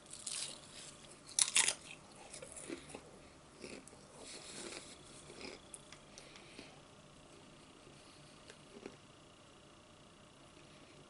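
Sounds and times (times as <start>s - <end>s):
potato chip crunching: 0.0s - 3.0s
chewing: 0.1s - 6.7s.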